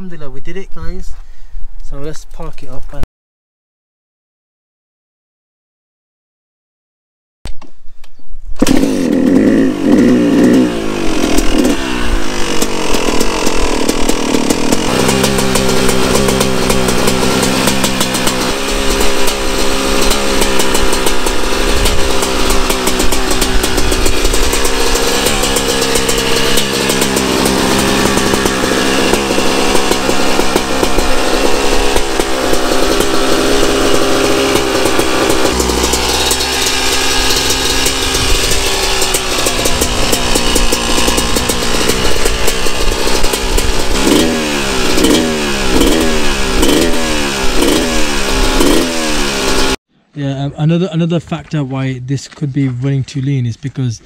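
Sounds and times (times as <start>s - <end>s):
dirt bike engine revving and idling: 8.6s - 49.8s.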